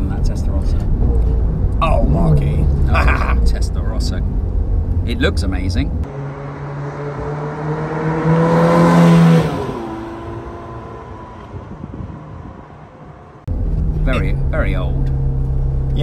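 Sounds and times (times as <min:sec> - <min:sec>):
sports car accelerating past: 0:06.0 - 0:14.0.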